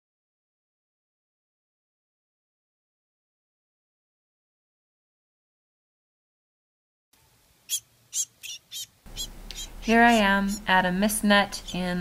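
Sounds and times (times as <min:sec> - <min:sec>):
bird chip notes: 0:07.7 - 0:12.0
person speaking: 0:09.1 - 0:12.0.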